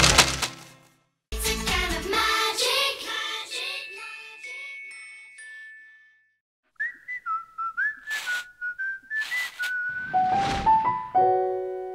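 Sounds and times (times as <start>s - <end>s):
whistled tune: 6.8s - 11.0s
swishing whooshes: 9.2s - 11.1s.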